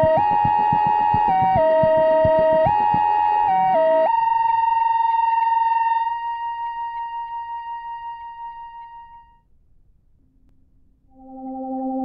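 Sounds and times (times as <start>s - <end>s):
held synthesizer note: 11.1s - 12.0s.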